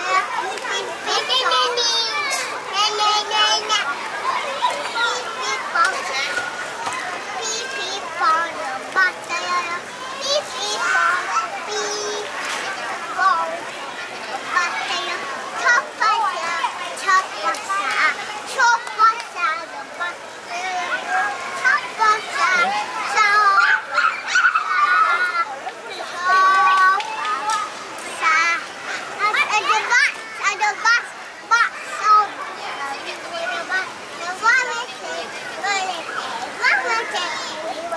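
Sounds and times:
hubbub of children playing: 0.0s - 37.9s
toddlers babbling and calling: 0.0s - 37.9s.

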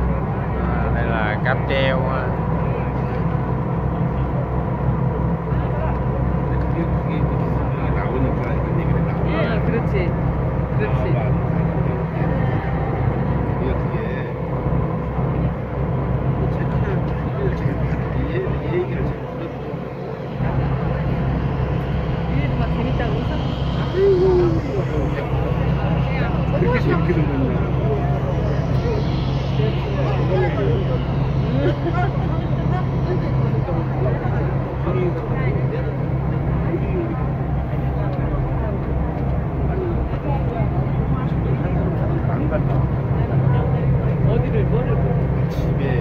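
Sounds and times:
ferry engine rumbling: 0.0s - 46.0s.

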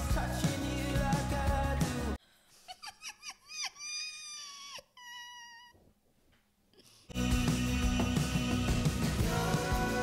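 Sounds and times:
high-pitched voice squealing: 3.2s - 5.8s.

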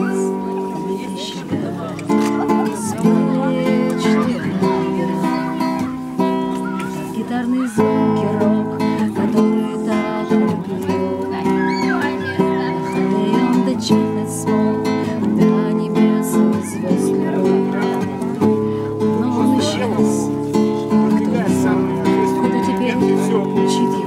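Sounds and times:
acoustic guitar strumming chords: 0.0s - 24.0s.

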